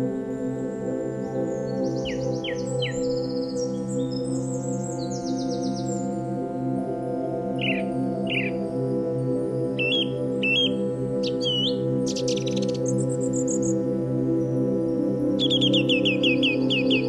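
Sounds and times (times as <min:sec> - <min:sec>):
ambient music with synth drone: 0:00.0 - 0:17.0
bird chirps: 0:07.6 - 0:08.6, 0:09.8 - 0:13.8, 0:15.4 - 0:17.0
bird trills: 0:09.8 - 0:13.8.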